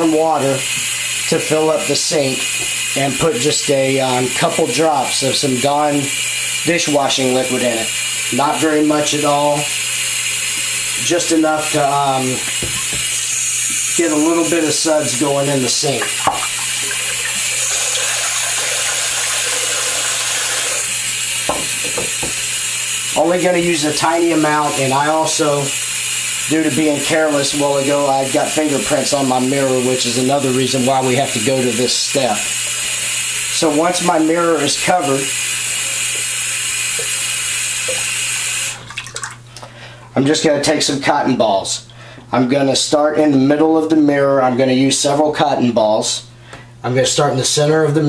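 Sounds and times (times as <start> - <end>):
faucet pouring into sink water: 0.0 - 39.5
tap running into sink water: 0.6 - 2.9, 12.3 - 22.6, 24.0 - 24.8, 35.3 - 39.7
water drips: 15.9 - 20.3, 35.8 - 39.8.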